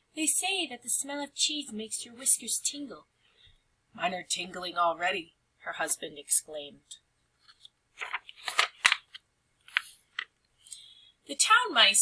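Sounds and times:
book page turning: 7.4 - 10.3.

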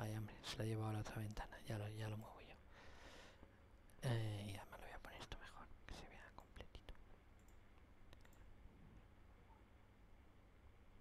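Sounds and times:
soft clicks: 7.4 - 8.5.

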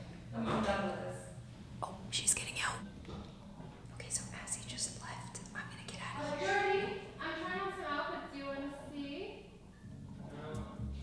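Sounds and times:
woman whispering: 1.8 - 2.8, 3.9 - 6.4.

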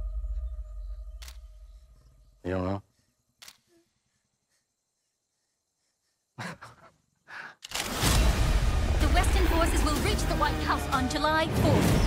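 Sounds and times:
sharp click: 1.2 - 1.6, 3.4 - 3.7.

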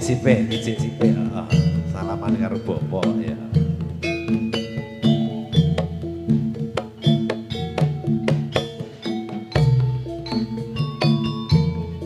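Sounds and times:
gamelan music: 0.0 - 12.0
sharp percussive strokes: 0.0 - 12.0.

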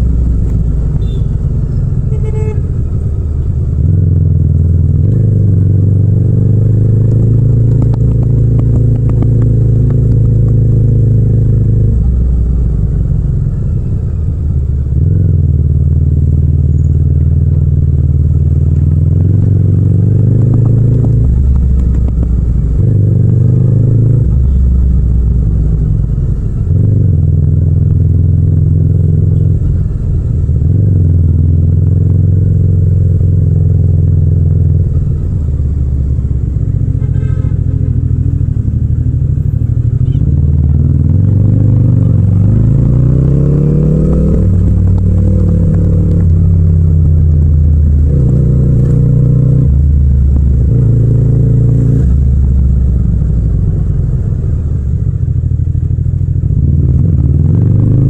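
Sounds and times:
motorcycle engine revving: 0.0 - 13.0, 14.4 - 58.0.

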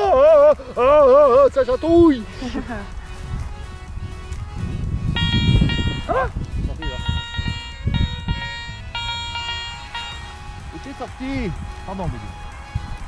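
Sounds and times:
person laughing: 0.0 - 1.4, 2.2 - 3.0
metal detector buzzing tones: 5.2 - 6.2, 6.8 - 10.5.

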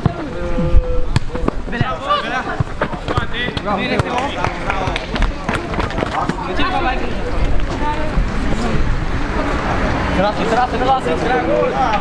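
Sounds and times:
players shouting: 0.0 - 8.2
ball kicked thuds: 1.1 - 4.2.

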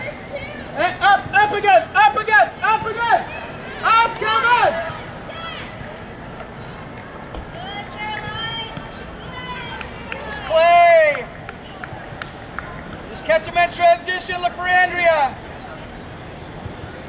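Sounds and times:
voices shouting calls: 0.0 - 16.0.

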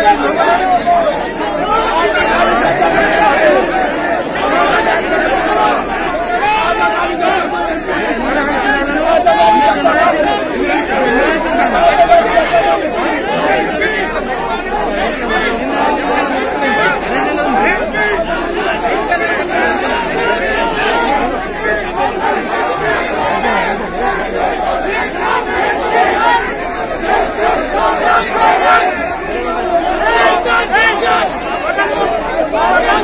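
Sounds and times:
crowd talking and calling out: 0.0 - 33.0.

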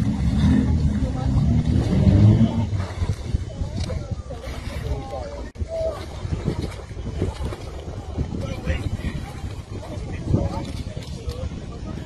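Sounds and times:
water splashing and sloshing: 0.0 - 12.0
wind buffeting microphone: 0.0 - 12.0.

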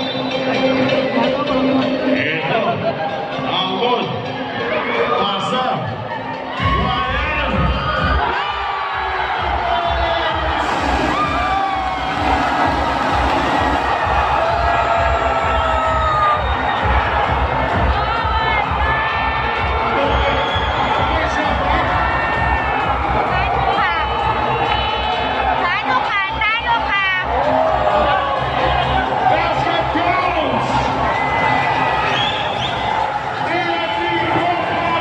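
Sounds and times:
crowd cheering and screaming: 6.3 - 35.0.

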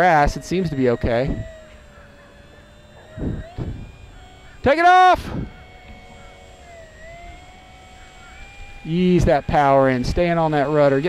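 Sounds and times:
model plane electric motor whine: 0.0 - 11.0.

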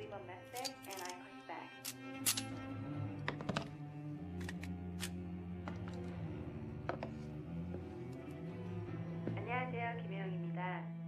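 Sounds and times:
film score sustained notes: 0.0 - 11.0
metal cartridges clicking: 0.6 - 1.2, 1.8 - 2.5.

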